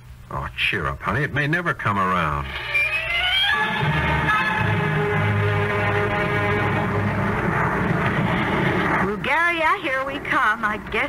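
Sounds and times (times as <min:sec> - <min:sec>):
airliner engines droning: 0:02.3 - 0:11.0.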